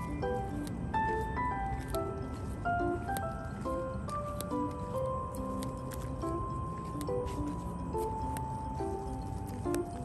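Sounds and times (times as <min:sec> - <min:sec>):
background music with long held notes: 0:00.0 - 0:10.0.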